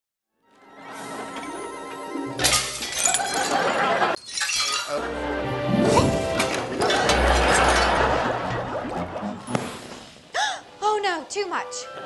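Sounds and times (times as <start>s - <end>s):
light sitcom music: 0.4s - 4.1s, 4.9s - 12.0s
dishes and glass shattering: 2.4s - 5.0s, 6.4s - 8.2s.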